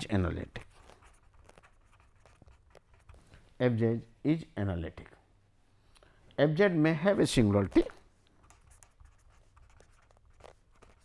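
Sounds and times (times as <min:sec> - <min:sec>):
pen scratching on paper: 0:00.5 - 0:03.2, 0:08.4 - 0:11.0.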